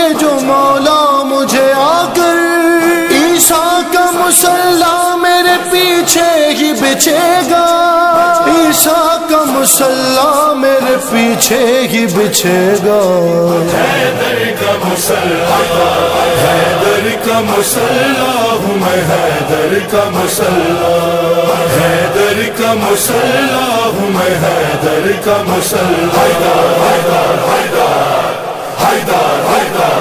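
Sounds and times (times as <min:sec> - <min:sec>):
men chanting in chorus: 0:00.0 - 0:30.0.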